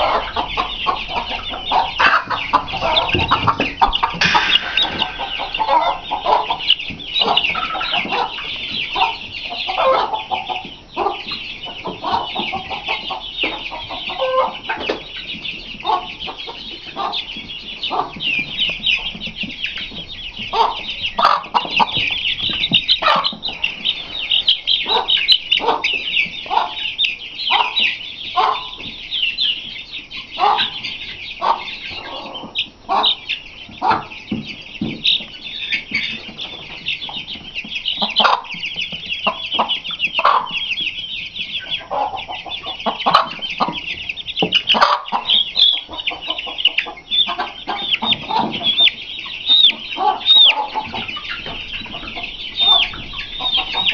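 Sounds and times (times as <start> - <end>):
chicken clucking: 0.0 - 53.9
young chickens peeping: 0.0 - 53.9.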